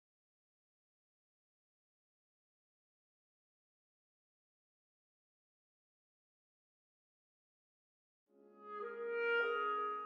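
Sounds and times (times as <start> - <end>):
clarinet and piano chamber music: 8.4 - 10.0.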